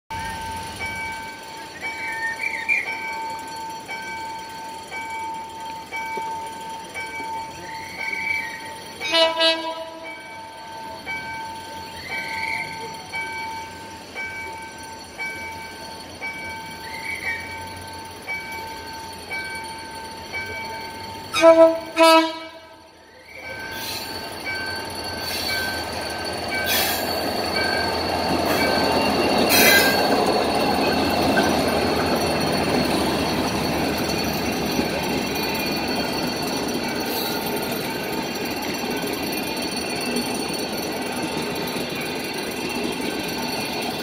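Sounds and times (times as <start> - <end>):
locomotive air horn blast: 9.1 - 10.0, 21.3 - 22.8.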